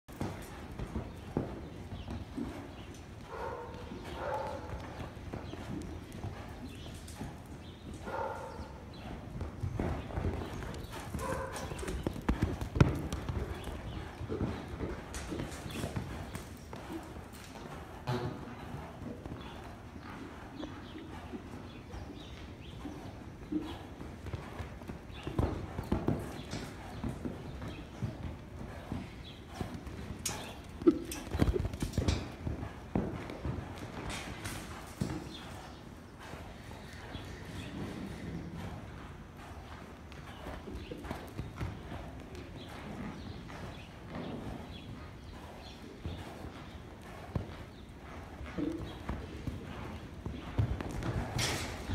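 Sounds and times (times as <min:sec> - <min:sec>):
hoofbeats on sand: 0:00.1 - 0:51.9.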